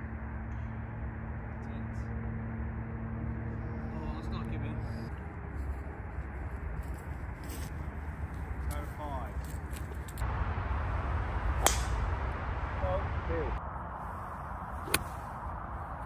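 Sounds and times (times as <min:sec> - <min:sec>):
golf club striking ball: 0:11.5 - 0:12.2, 0:14.8 - 0:15.2.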